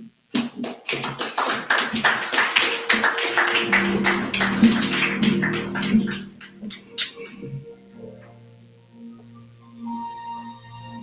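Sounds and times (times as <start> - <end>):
rhythmic hand clapping: 0.3 - 7.4
sustained keyboard chords: 2.5 - 11.0.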